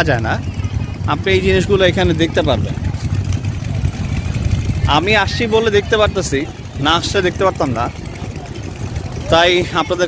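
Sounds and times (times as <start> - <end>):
faint crowd background: 0.0 - 10.0
wind buffeting microphone: 0.4 - 9.6.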